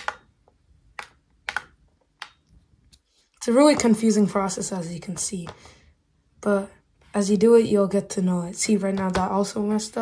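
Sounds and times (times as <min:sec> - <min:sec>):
plastic clicks and taps: 0:00.0 - 0:03.0.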